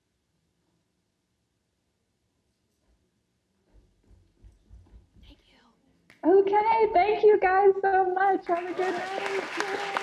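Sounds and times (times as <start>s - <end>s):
footsteps on a stage: 2.6s - 6.4s
person whispering: 5.2s - 6.0s.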